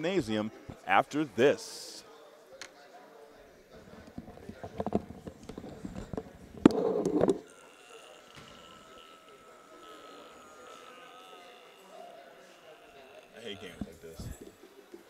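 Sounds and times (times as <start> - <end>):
indistinct voices: 3.8 - 15.0.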